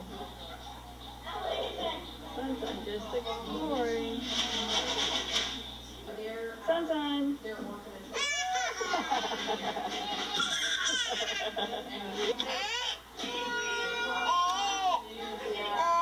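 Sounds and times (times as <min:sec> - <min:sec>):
toddler crying: 0:08.2 - 0:09.0, 0:10.3 - 0:11.3, 0:12.4 - 0:15.0.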